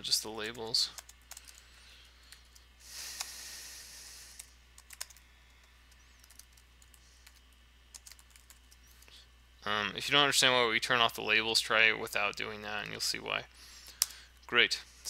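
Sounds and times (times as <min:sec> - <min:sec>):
low steady hum: 0:00.0 - 0:15.0
typing on computer keyboard: 0:00.5 - 0:01.6, 0:04.4 - 0:05.2, 0:05.9 - 0:08.8.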